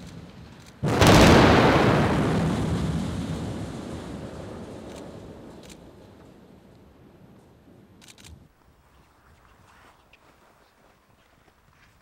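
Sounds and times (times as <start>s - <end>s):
low explosion rumble: 0.0s - 8.0s
flames burning: 0.0s - 8.5s.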